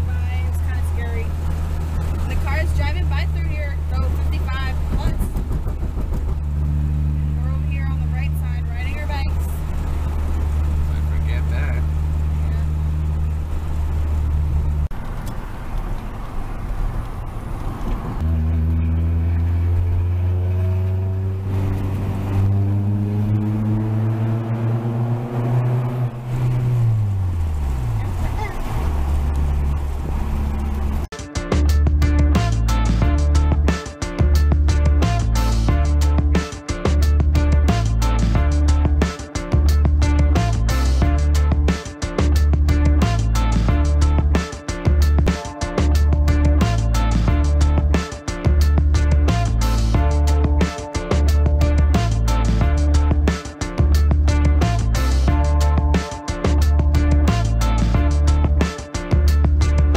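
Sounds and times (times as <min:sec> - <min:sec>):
car engine and road noise: 0:00.0 - 0:59.9.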